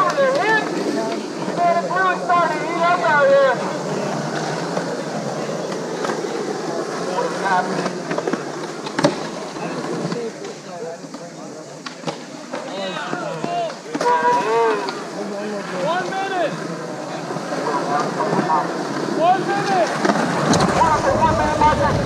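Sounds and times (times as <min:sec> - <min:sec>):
skateboard clacks: 0:00.0 - 0:22.0
skateboard wheels rolling on concrete: 0:00.0 - 0:22.0
faint talking: 0:20.6 - 0:22.0.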